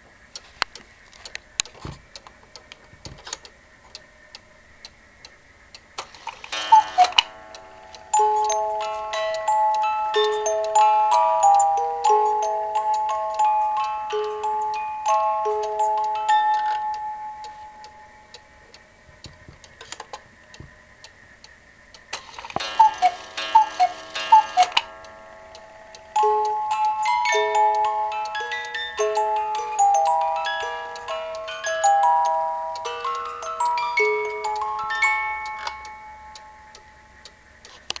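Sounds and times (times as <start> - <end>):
clock ticking: 0.0 - 38.0
cuckoo clock calling: 0.0 - 38.0
music box melody: 6.1 - 20.2, 22.0 - 38.0.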